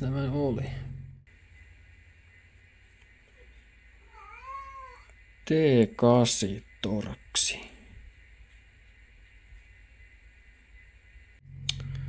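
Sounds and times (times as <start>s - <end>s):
man's voice: 0.0s - 0.9s.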